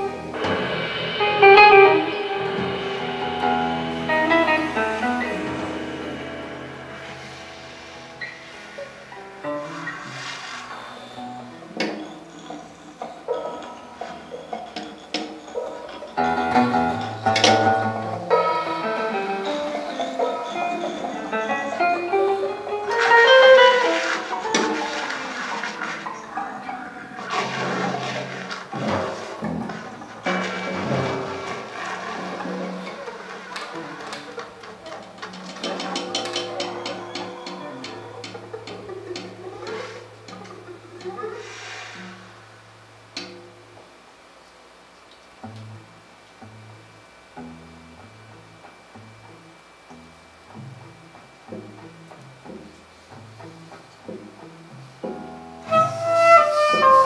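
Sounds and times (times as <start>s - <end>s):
drum kit: 0.0s - 12.3s, 16.1s - 26.3s, 27.2s - 40.4s, 51.4s - 57.0s
electric guitar: 0.0s - 44.0s, 45.0s - 57.0s
soprano saxophone melody: 21.3s - 24.7s, 55.6s - 57.0s.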